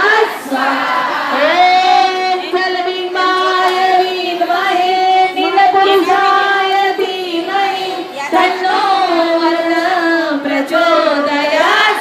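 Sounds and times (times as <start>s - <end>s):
women singing into microphones: 0.0s - 12.0s.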